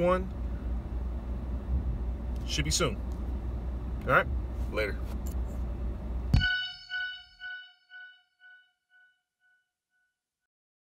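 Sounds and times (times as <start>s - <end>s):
sharp hit: 6.4s - 8.6s
echoing outro chime: 6.4s - 9.6s.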